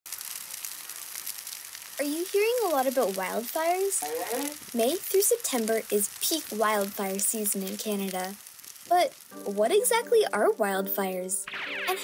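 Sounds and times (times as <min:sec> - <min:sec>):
fire crackling and hissing: 0:00.1 - 0:12.0.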